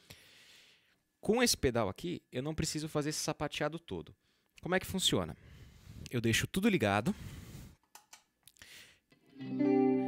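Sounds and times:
clean electric guitar chord: 0:09.4 - 0:10.0.

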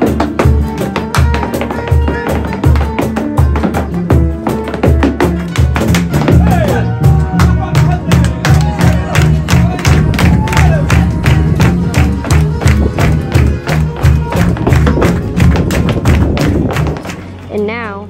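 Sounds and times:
dancer's footwork taps: 0:00.0 - 0:06.6, 0:11.0 - 0:17.2
flamenco music with heavy beat: 0:00.0 - 0:17.4.

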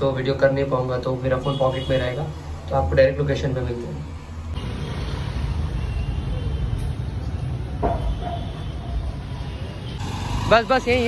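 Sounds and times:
vehicle engines rumbling: 0:02.0 - 0:11.0.

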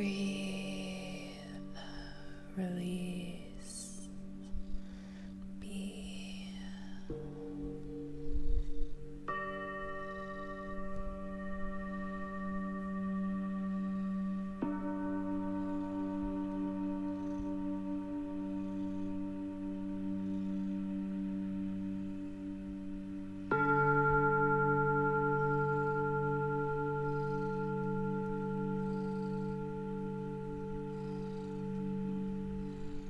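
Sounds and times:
singing bowl ringing: 0:00.0 - 0:33.0.

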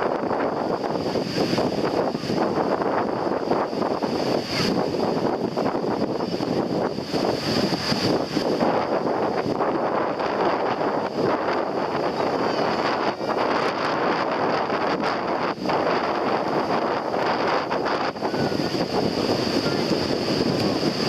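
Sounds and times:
surf breaking in shallow water: 0:00.0 - 0:21.0
wind buffeting microphone: 0:00.0 - 0:21.0.

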